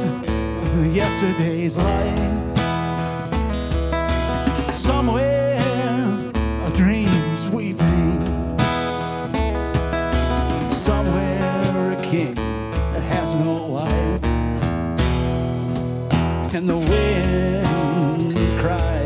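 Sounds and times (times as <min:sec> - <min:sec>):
acoustic guitar: 0:00.0 - 0:19.0
hand drum beat: 0:00.0 - 0:19.0.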